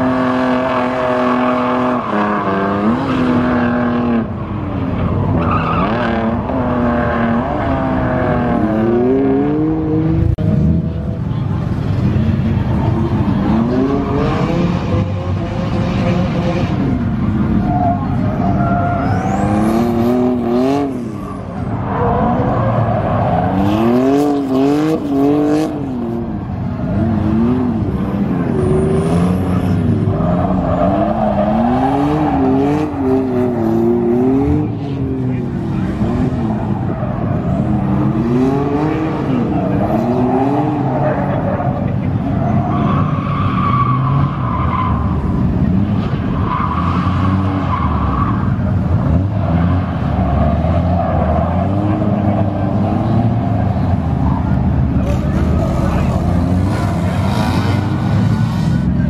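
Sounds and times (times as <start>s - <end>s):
car engines revving: 0.0s - 59.0s
tyre squeal: 17.5s - 20.3s.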